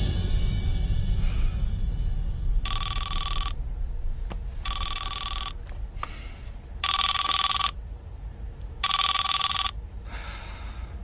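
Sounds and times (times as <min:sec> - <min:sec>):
low steady hum: 0:00.0 - 0:11.0
electronic telephone ringing: 0:02.6 - 0:03.6, 0:04.6 - 0:05.6, 0:06.8 - 0:07.8, 0:08.8 - 0:09.8.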